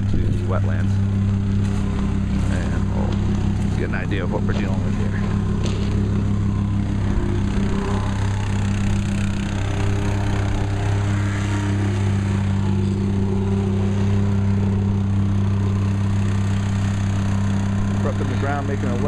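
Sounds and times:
engine running steadily: 0.0s - 19.0s.

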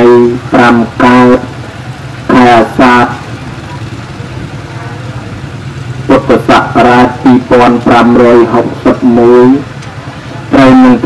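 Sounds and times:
amplified voice chanting: 0.0s - 1.5s, 2.3s - 3.2s, 6.1s - 9.7s, 10.5s - 11.0s.

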